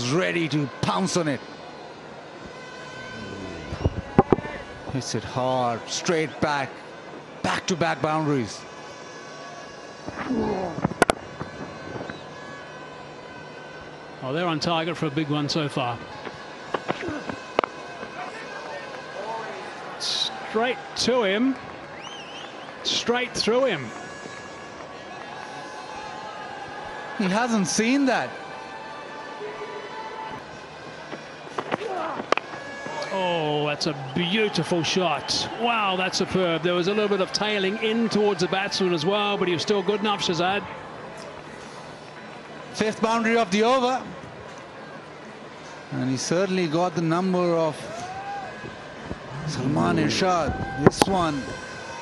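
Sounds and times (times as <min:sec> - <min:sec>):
stadium ambience: 0:00.0 - 0:52.0
distant voice: 0:02.8 - 0:05.1.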